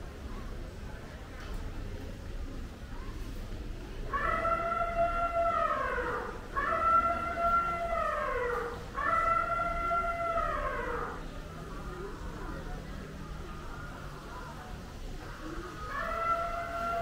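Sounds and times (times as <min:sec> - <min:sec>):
animal wailing calls: 0:04.0 - 0:11.4, 0:15.4 - 0:17.0.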